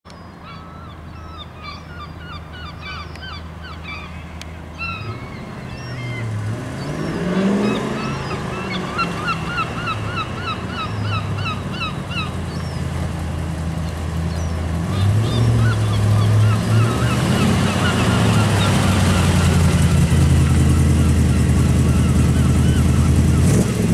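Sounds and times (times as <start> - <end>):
birds chirping: 0.1 - 23.9
sports car engine accelerating: 3.8 - 23.9.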